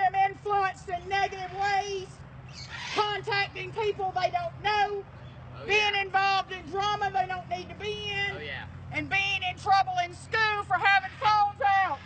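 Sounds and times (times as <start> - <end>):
woman speaking: 0.0 - 2.2, 3.0 - 5.0, 5.7 - 12.0.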